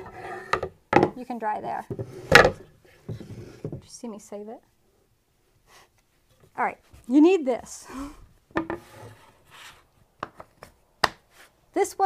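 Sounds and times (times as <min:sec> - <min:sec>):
board scraping: 0:00.0 - 0:00.7, 0:01.9 - 0:03.8, 0:08.6 - 0:10.5
wooden board knocked on table: 0:08.6 - 0:08.8.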